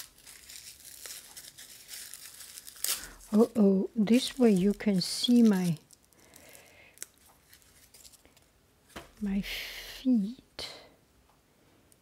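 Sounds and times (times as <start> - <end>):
tissue paper crinkling: 0.0 - 8.5.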